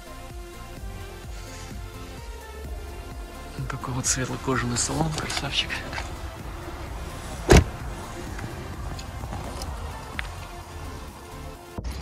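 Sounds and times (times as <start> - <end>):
car door shutting: 4.8 - 10.7.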